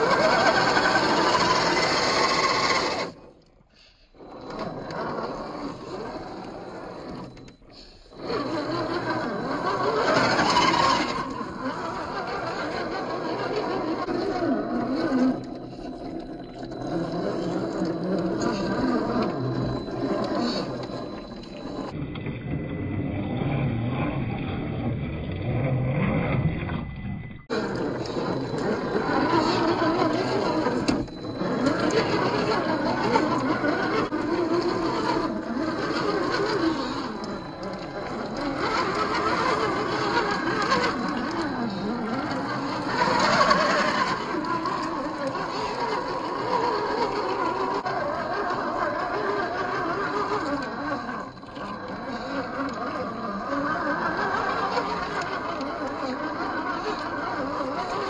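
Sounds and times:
electric motor whining: 0.0s - 3.2s, 4.2s - 22.2s, 26.6s - 58.0s.

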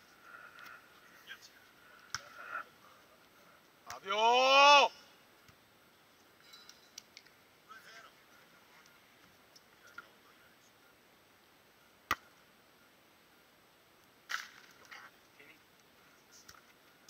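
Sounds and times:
hands slapping volleyball: 2.0s - 2.3s, 12.1s - 12.4s
player shouting: 3.9s - 5.2s.

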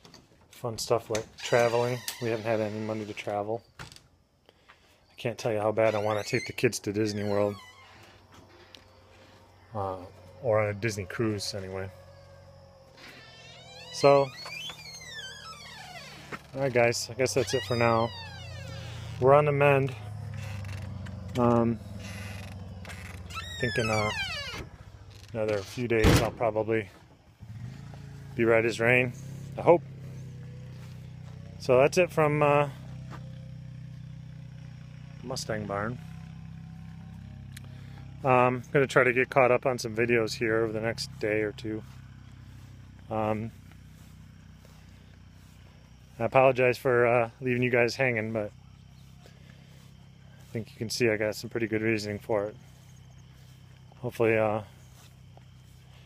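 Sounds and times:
high wavering animal call: 10.0s - 16.3s, 17.4s - 19.2s.

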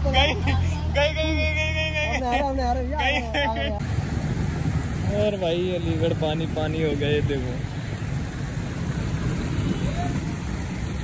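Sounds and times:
low rumble of street noise: 0.0s - 11.0s.

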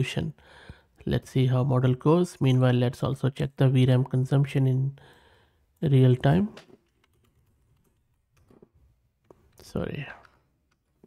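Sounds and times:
typing on computer keyboard: 6.8s - 8.7s.

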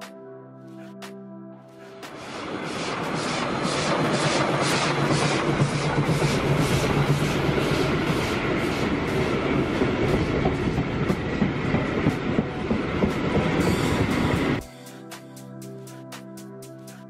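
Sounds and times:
music: 0.0s - 4.9s, 7.1s - 17.0s
train rumbling and clattering: 2.0s - 14.6s.

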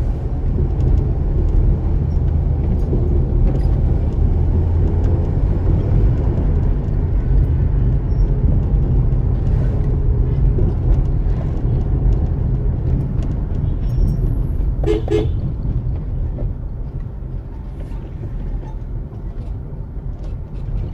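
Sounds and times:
car engine and tyre rumble: 0.0s - 20.9s.

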